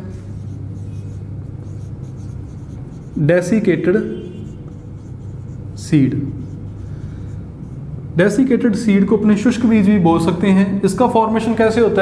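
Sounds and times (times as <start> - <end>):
marker writing on whiteboard: 0.0 - 8.0
steady low hum: 0.0 - 12.0.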